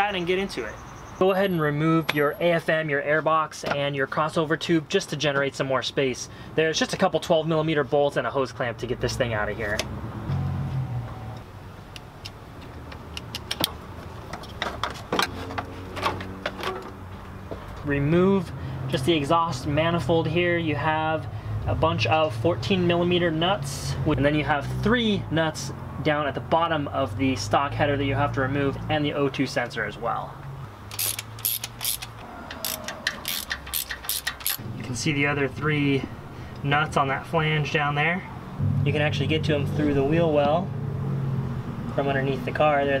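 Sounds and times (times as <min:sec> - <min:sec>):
ratchet wrench clicking: 0:30.9 - 0:34.6
low steady hum: 0:38.5 - 0:41.1.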